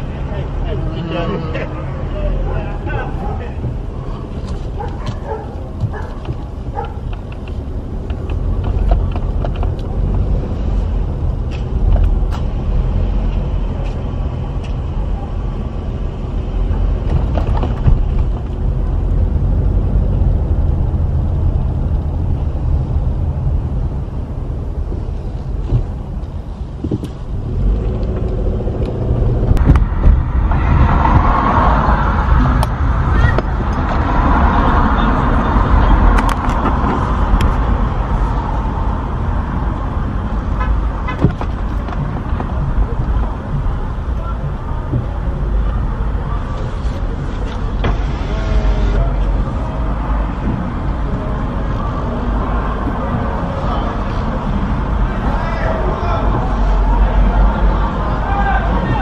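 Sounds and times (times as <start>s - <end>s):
car engine and road noise: 0.0s - 59.0s.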